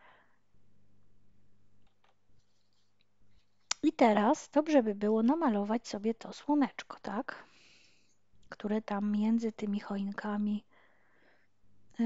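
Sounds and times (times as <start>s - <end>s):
woman speaking: 3.7s - 7.4s, 8.5s - 10.6s.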